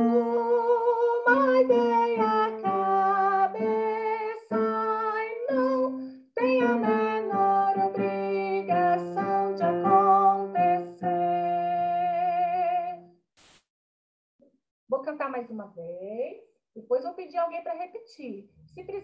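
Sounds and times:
woman singing alone: 0.0 - 13.0.

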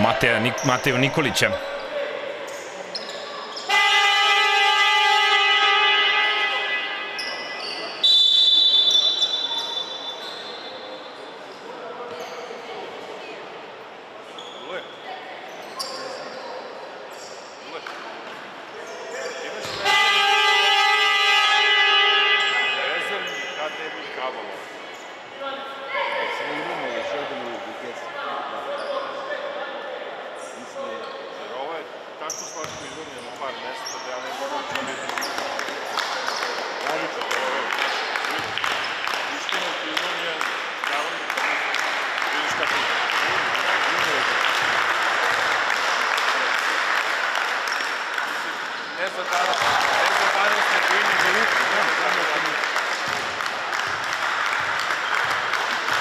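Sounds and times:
voices in echoing hall: 0.0 - 56.0
loud buzzing horn: 3.7 - 7.1, 19.8 - 23.3
high whistle blowing: 8.0 - 10.0.

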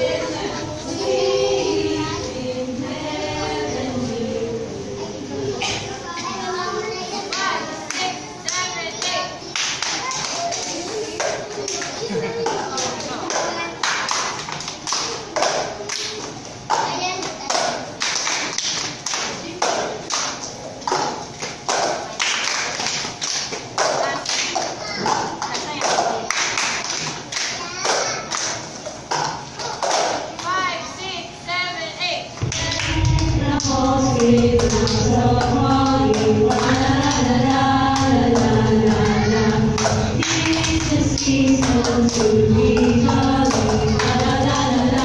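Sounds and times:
women singing together: 0.0 - 5.9, 32.4 - 45.0
hand claps: 7.3 - 30.5.

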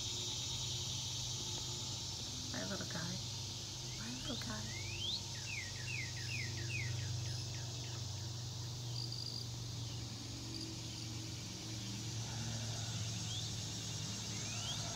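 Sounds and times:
insects hissing: 0.0 - 14.9
bird whistling: 4.6 - 7.6.

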